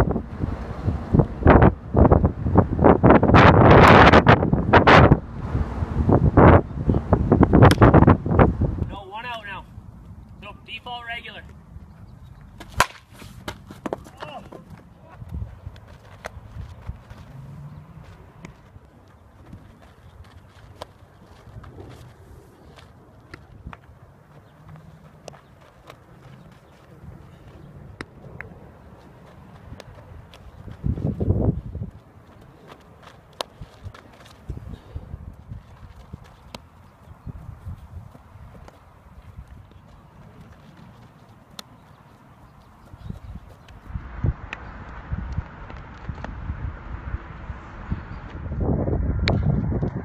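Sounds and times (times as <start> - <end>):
wind rumbling on microphone: 0.0 - 9.0, 14.8 - 50.0
footsteps on grass and dirt: 13.2 - 34.7, 35.3 - 43.9.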